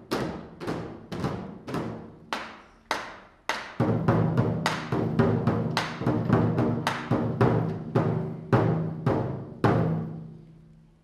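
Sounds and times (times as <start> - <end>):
large barrel drums beating: 0.0 - 2.5, 3.5 - 10.3.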